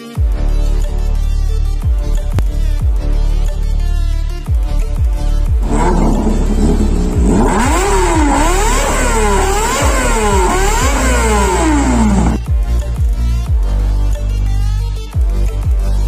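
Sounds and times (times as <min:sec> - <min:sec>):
motorcycle engine revving: 0:05.5 - 0:12.5
electronic music: 0:05.6 - 0:13.0.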